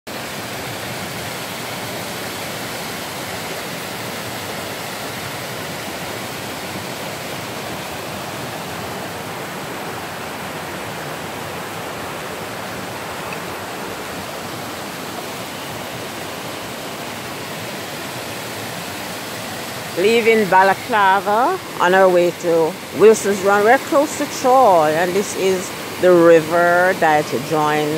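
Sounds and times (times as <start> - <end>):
river rushing over rocky cascade: 0.1 - 27.9.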